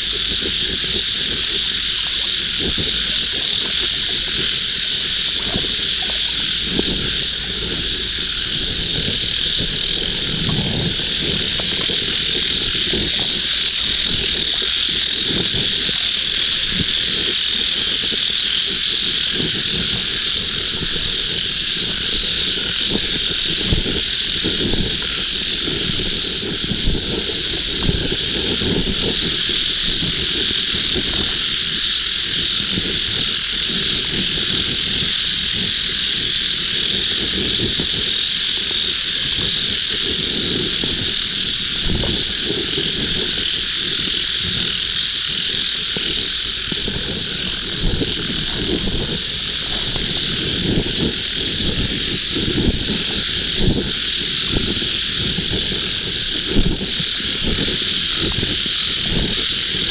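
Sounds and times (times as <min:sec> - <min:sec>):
frogs and insects droning: 0:00.0 - 0:59.9.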